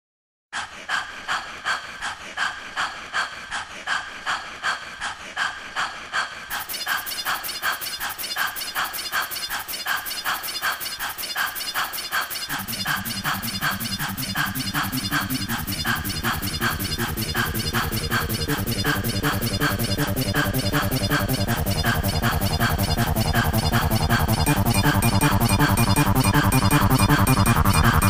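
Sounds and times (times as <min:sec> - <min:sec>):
fast high ticks: 0:06.5 - 0:28.0
pulsing electronic sound: 0:06.5 - 0:28.0
bass line: 0:12.5 - 0:28.0.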